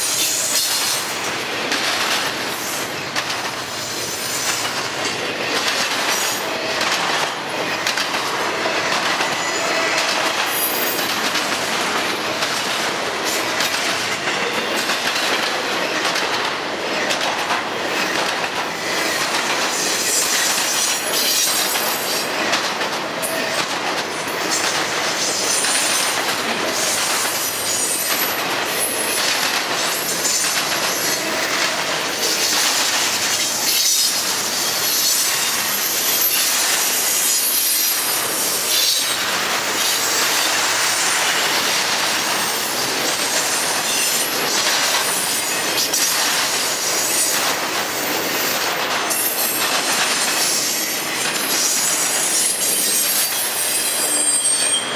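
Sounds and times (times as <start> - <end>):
freight train rattling past: 0.0 - 54.9
high wheel squeal: 51.8 - 54.9.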